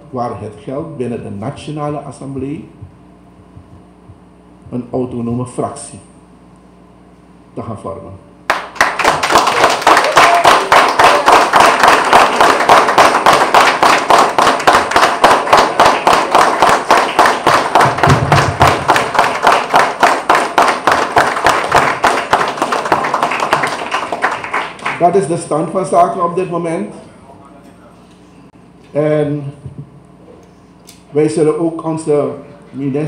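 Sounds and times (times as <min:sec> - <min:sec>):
small group applauding: 0:08.5 - 0:25.3.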